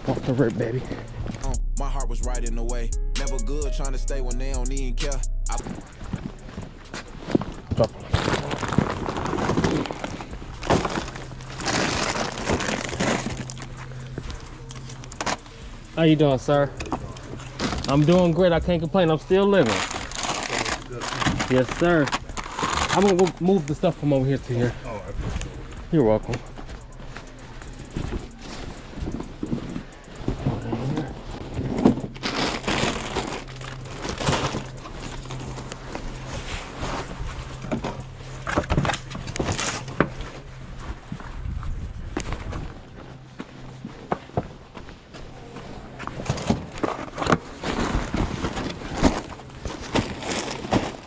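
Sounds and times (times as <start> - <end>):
shuffling footsteps: 0.0 - 51.0
fabric bag rustling: 5.9 - 15.6
plastic bags rustling: 5.9 - 41.2, 41.8 - 51.0.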